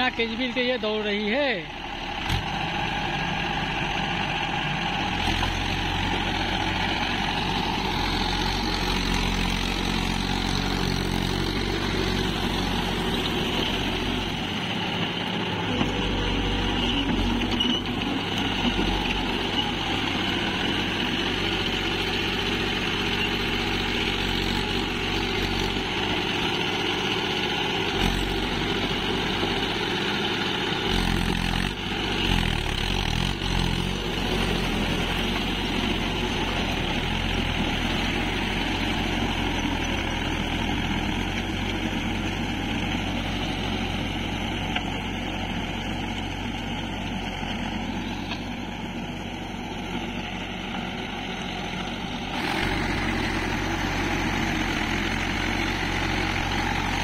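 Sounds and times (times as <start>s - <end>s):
tractor diesel engine under load: 0.0s - 57.0s.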